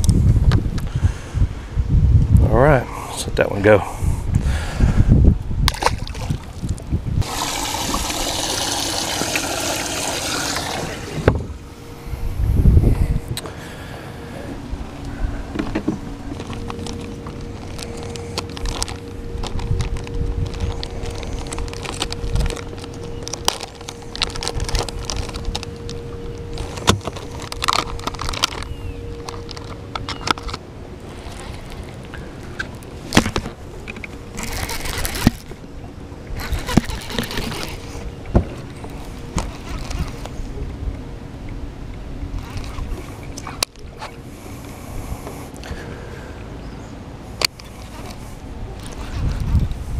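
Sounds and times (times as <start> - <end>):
electric trolling motor humming: 7.2 - 45.7
fishing reel and tackle clicking: 16.3 - 35.6, 36.4 - 40.4, 42.4 - 43.8, 47.4 - 49.8.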